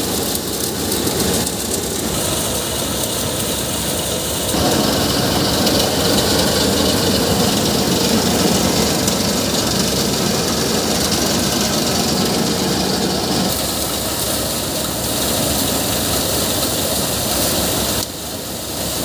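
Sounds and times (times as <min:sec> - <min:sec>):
thresher drum and fan din: 0:00.0 - 0:19.0
tractor engine: 0:00.0 - 0:19.0.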